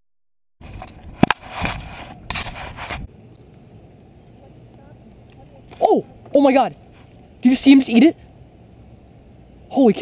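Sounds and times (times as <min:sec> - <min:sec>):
camera rubbing against clothing: 0:00.6 - 0:03.1
faint outdoor background: 0:00.6 - 0:10.0.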